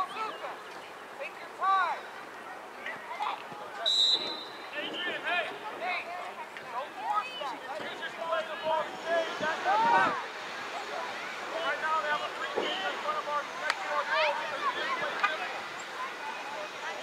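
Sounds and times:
referee's whistle blast: 3.8s - 5.0s
voices shouting: 6.7s - 17.0s.

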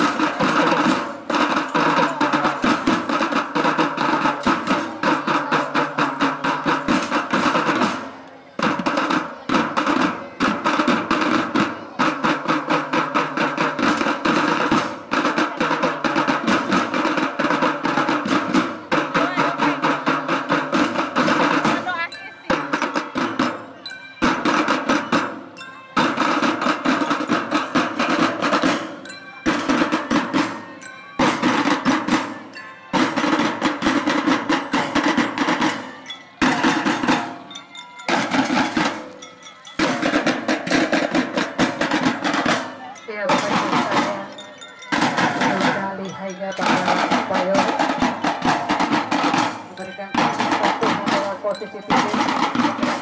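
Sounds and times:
drum band playing: 0.0s - 53.0s.

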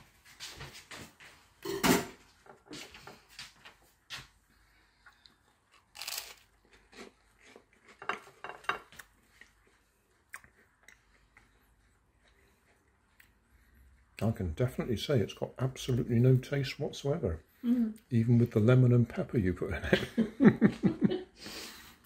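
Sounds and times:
toast crunching: 5.0s - 11.5s
chewing toast: 5.0s - 14.2s.

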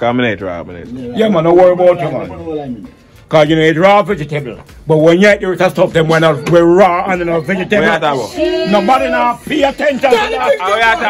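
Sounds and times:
man talking in sing-song tones: 3.4s - 11.0s.

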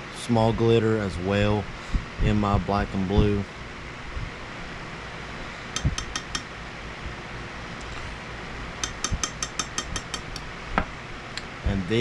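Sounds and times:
spoon tapping: 5.8s - 6.5s, 8.8s - 10.4s.

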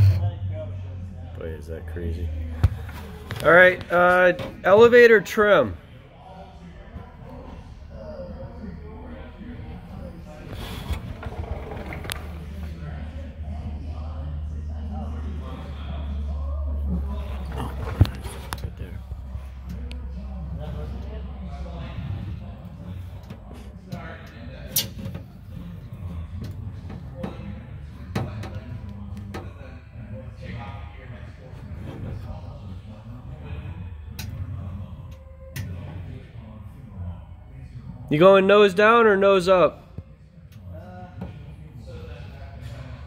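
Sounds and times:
low steady rumble: 0.0s - 3.7s
steady low hum: 0.0s - 4.7s
faint voices: 0.0s - 43.0s.

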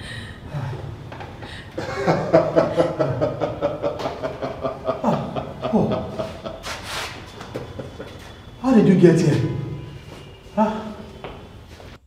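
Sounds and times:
drawn-out laughter: 1.8s - 8.5s.

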